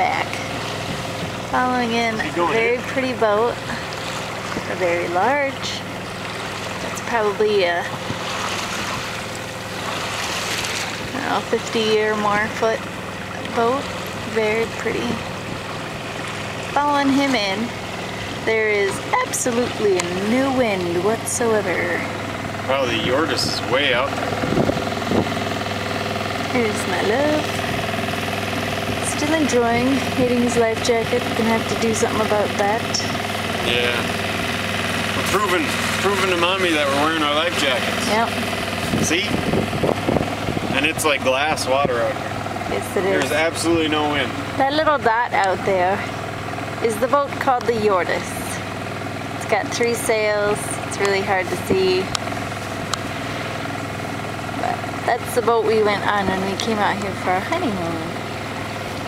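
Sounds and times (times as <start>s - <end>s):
boat motor running: 0.0s - 59.0s.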